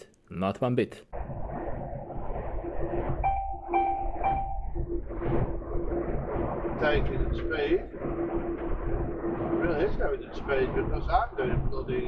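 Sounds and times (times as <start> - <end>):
short electronic beeps: 3.2 - 4.7.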